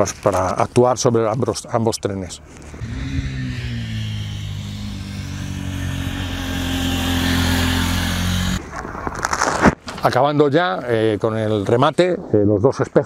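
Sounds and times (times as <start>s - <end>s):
motorcycle engine running: 2.8s - 8.6s.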